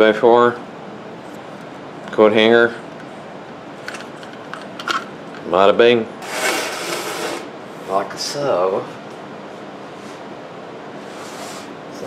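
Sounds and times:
object scraping across worktop: 6.2s - 7.5s, 11.0s - 11.7s.

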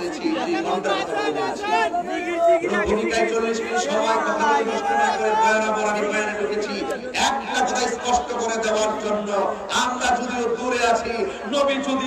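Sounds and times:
man preaching over loudspeakers: 0.0s - 12.0s.

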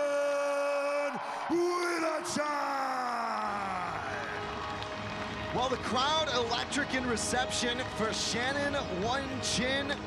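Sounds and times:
arena crowd cheering: 0.0s - 10.0s.

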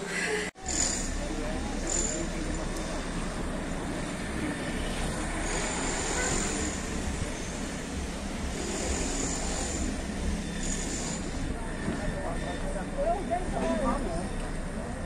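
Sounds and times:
low street rumble with hiss: 0.0s - 15.0s.

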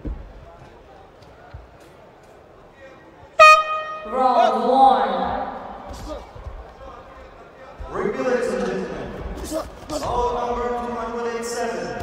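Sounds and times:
low arena noise: 0.0s - 12.0s
boxing ring horn: 3.4s - 4.1s.

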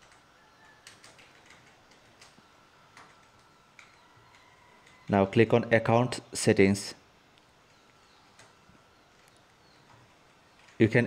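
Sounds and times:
computer mouse clicks: 0.0s - 5.0s.

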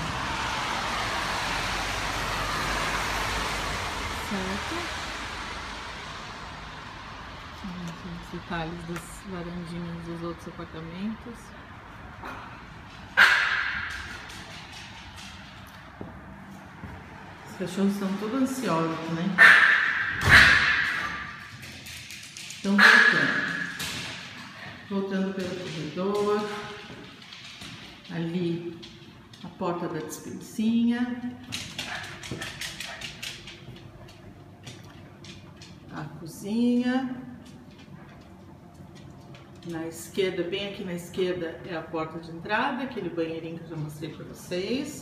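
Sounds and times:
dog barking: 13.2s - 13.9s, 19.4s - 21.3s, 31.8s - 33.2s
dog claws clicking on wooden floor: 13.8s - 16.3s, 20.3s - 30.1s, 31.4s - 36.0s.

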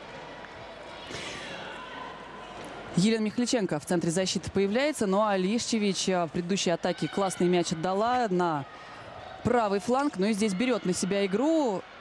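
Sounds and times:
crowd noise and voices: 0.0s - 12.0s.

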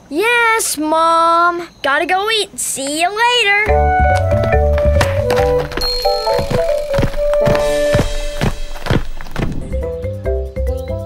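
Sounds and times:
cartoon footstep thuds: 3.7s - 9.8s
light background music: 3.7s - 11.0s.

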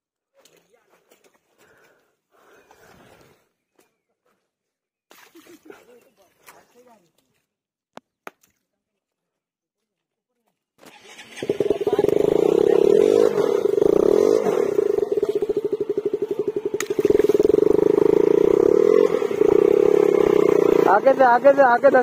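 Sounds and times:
motorcycle engine revving hard: 10.9s - 22.0s.

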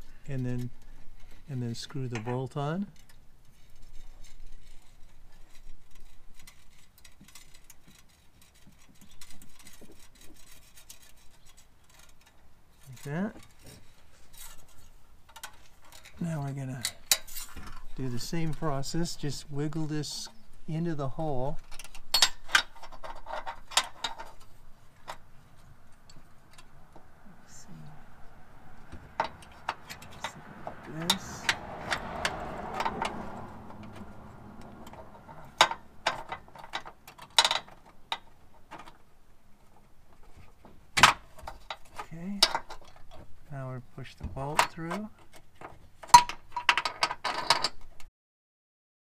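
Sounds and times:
metallic clicks and rattles: 0.3s - 19.3s, 21.5s - 26.9s, 29.0s - 43.3s
low steady rumble: 11.9s - 40.7s.

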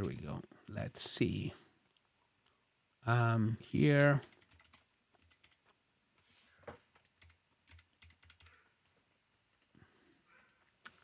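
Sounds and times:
keyboard typing: 4.0s - 5.8s, 6.9s - 8.6s.

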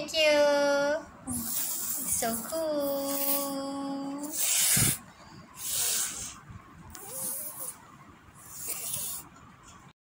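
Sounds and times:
hissing noise bursts: 4.2s - 6.4s, 8.4s - 9.3s.

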